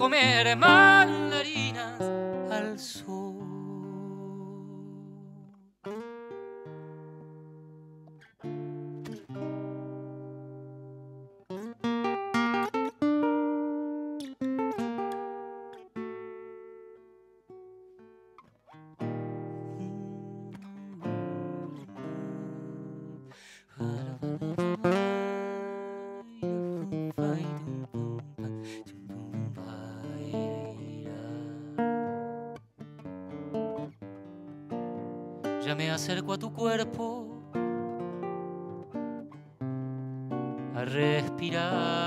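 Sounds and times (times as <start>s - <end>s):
acoustic guitar playing: 0.0s - 42.0s.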